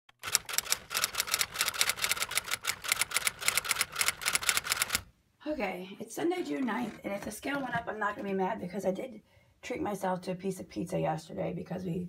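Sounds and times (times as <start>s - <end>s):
rapid sharp clicks: 0.1s - 5.1s.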